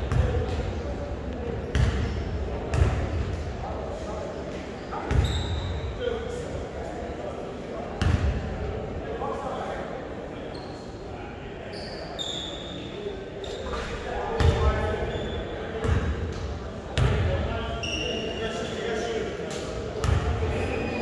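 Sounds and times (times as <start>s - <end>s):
sneaker squeaks: 4.5s - 6.0s, 10.5s - 11.0s, 11.6s - 16.0s, 17.0s - 19.1s, 20.0s - 21.0s.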